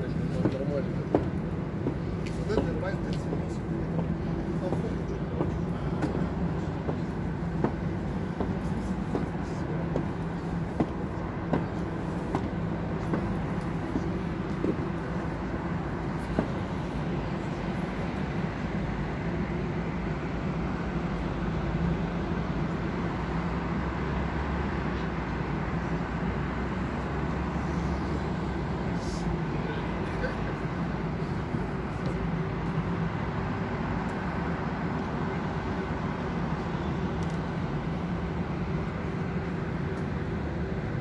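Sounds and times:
street traffic hum: 0.0 - 41.0.

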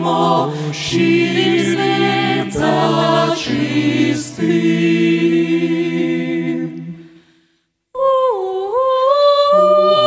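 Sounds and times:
a cappella group singing: 0.0 - 7.4, 8.0 - 10.0.

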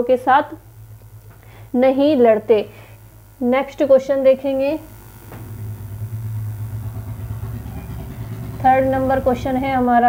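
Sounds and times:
steady low hum: 0.0 - 10.0
faint rumble: 4.5 - 10.0.

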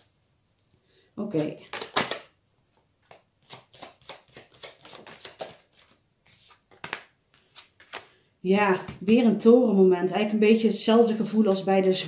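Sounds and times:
cards flicking: 1.4 - 2.3, 3.1 - 8.1.

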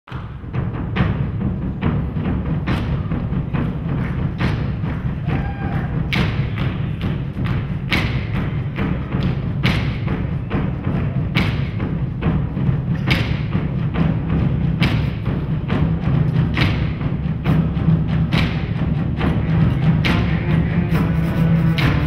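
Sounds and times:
large drums pounding: 0.1 - 22.0
sharp accented drum strikes: 0.1 - 22.0.

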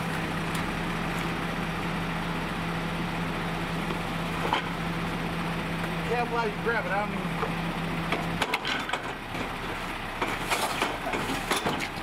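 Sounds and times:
truck hum: 0.0 - 12.0
waste clattering in garbage truck: 8.2 - 12.0
knocks and cracks of wood: 10.2 - 12.0.

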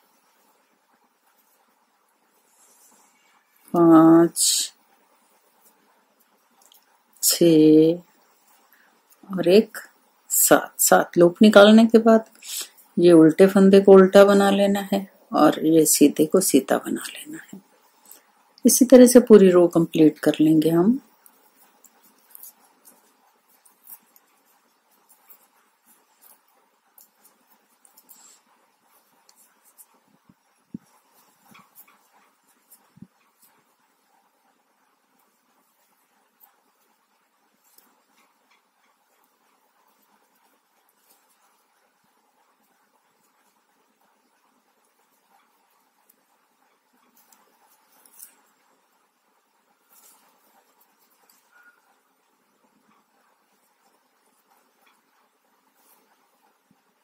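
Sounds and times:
knitting needles clicking: 6.2 - 7.2, 20.4 - 49.1.

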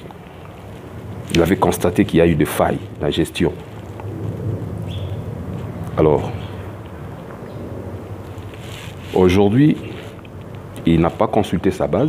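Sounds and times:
wind buffeting microphone: 0.0 - 10.8.

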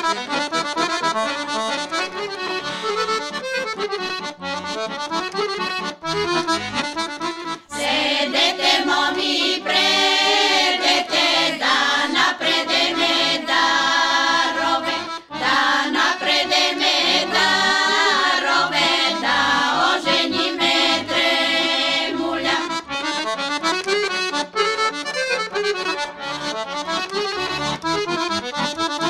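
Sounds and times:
women's choir singing folk song: 7.7 - 22.9.

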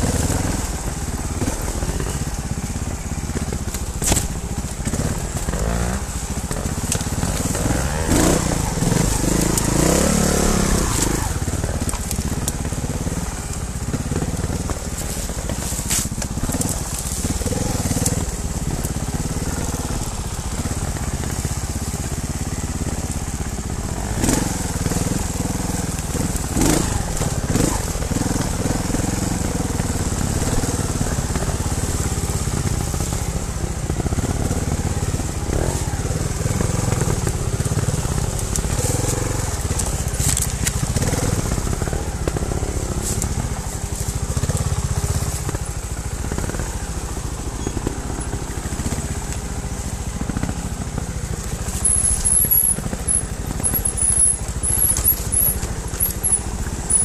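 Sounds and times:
motorcycle engine revving: 0.0 - 57.0.

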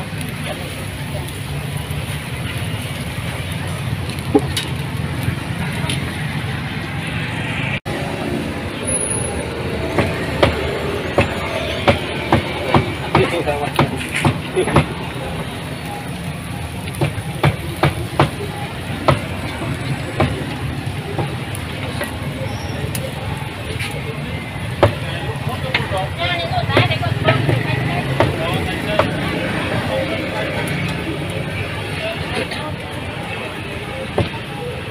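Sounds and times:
faint voices: 0.0 - 34.9
traffic rumble: 0.0 - 34.9.

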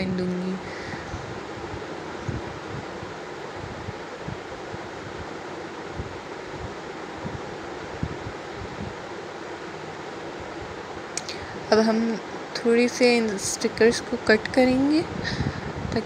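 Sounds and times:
background hiss and rumble: 0.0 - 16.0.

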